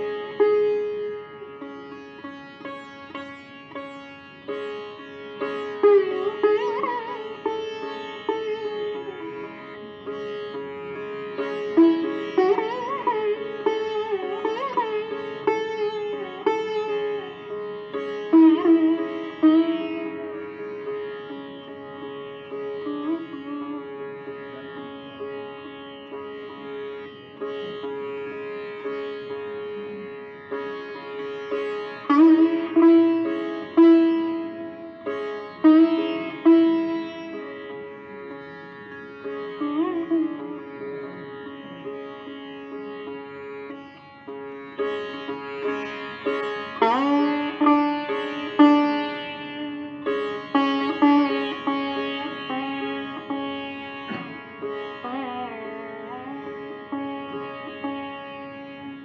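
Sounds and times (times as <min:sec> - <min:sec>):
ringing sitar drone: 0:00.0 - 0:59.0
sitar melody: 0:00.0 - 0:59.0.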